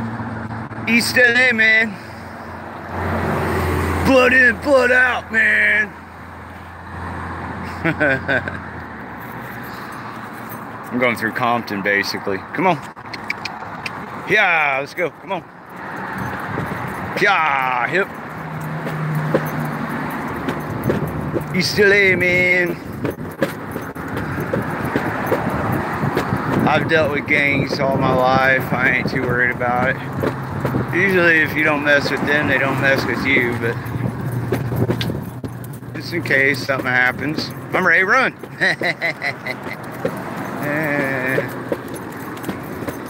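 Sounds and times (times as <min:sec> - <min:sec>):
road traffic hum: 0:00.0 - 0:43.0
person speaking: 0:17.0 - 0:18.2, 0:21.4 - 0:22.9, 0:30.9 - 0:34.2, 0:35.8 - 0:39.9, 0:40.5 - 0:41.7.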